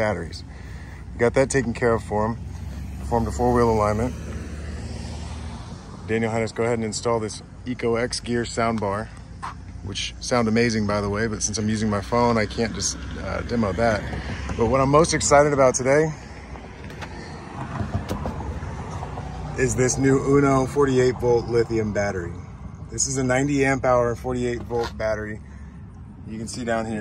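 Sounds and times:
outdoor background noise: 0.0s - 27.0s.

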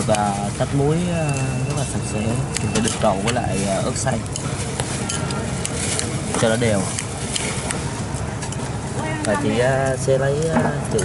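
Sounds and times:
street traffic noise: 0.0s - 11.0s
metal spoon stirring in ceramic bowl: 1.3s - 8.7s.

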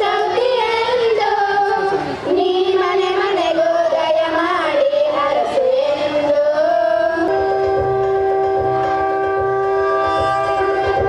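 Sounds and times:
long horn blast in dance music: 7.3s - 11.0s.

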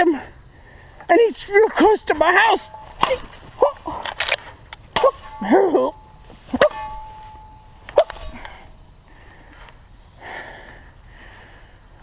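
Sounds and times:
knife chopping into tree: 2.9s - 3.5s.

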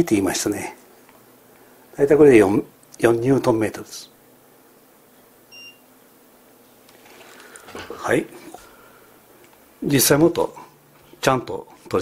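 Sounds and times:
torque wrench beep: 5.5s - 5.8s.

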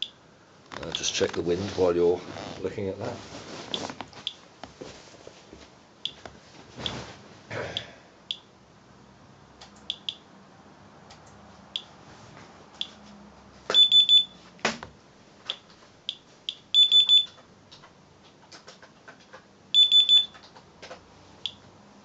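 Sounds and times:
geiger counter chirping: 9.9s - 10.2s
quick high alert beeps: 13.7s - 14.4s, 19.8s - 20.3s.

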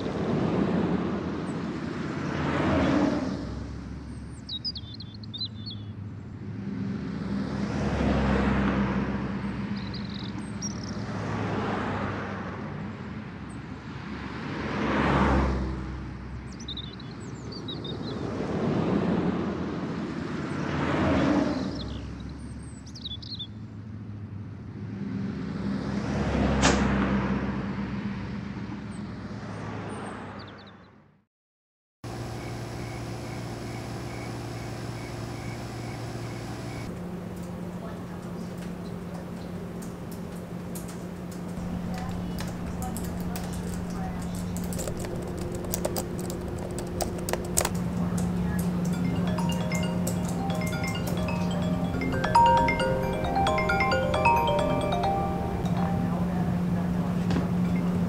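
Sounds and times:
cars passing: 0.0s - 4.4s, 5.9s - 17.4s, 18.1s - 22.8s, 23.6s - 30.6s, 34.4s - 58.0s.

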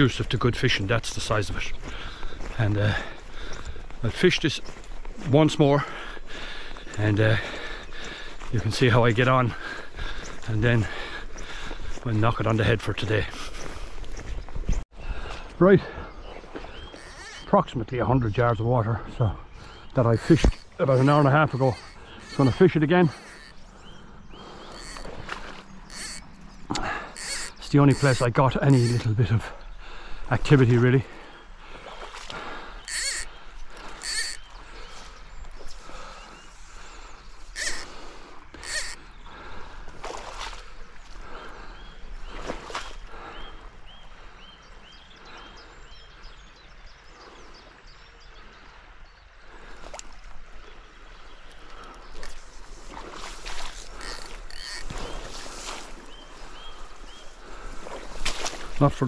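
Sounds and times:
rustling through wet grass: 1.6s - 5.4s, 19.5s - 29.4s, 42.1s - 43.1s, 49.7s - 59.0s
faint bird chirp: 13.4s - 29.8s, 31.0s - 39.7s.

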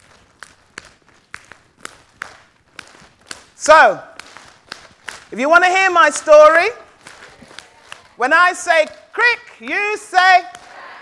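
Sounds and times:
hands slapping thighs: 0.0s - 9.1s, 10.3s - 10.8s.

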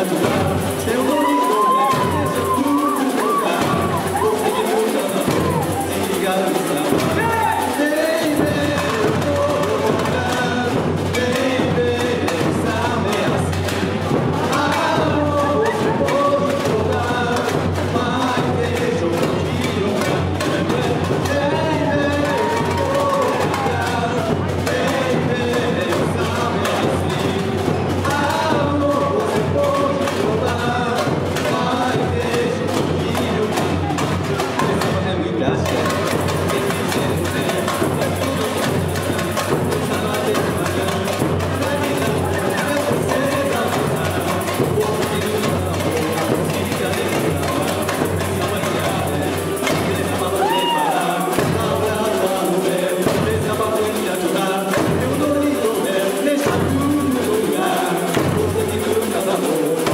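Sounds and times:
samba percussion: 0.0s - 59.9s
voices singing: 0.0s - 59.9s.

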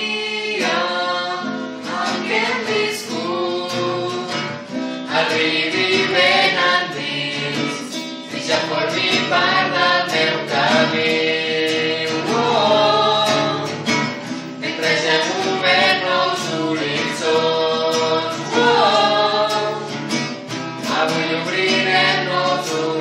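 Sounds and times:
acoustic guitar: 0.0s - 23.0s
group of voices singing: 0.0s - 23.0s.

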